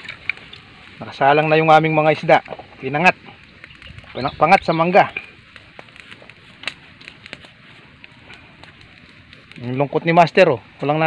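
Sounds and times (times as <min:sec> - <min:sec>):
fire popping: 0:00.0 - 0:11.0
low hiss: 0:00.0 - 0:11.0
wood fire crackling: 0:00.0 - 0:11.0.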